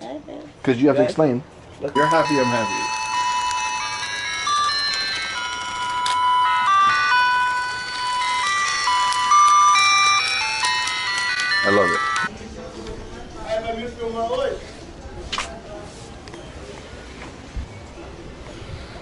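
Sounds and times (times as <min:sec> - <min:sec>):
electronic beeping melody: 0:02.0 - 0:12.3.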